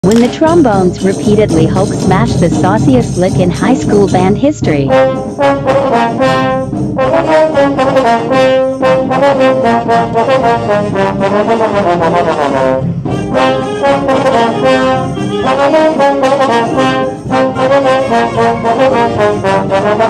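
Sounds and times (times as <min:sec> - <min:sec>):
trombones playing: 0:00.1 - 0:20.0.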